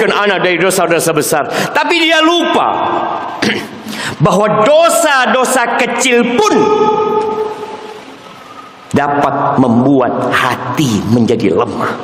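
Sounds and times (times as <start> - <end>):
man speaking: 0.0 - 7.6, 8.9 - 12.0.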